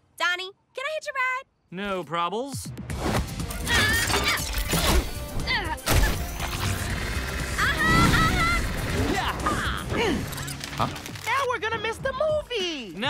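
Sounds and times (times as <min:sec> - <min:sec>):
background music: 0:01.9 - 0:13.0.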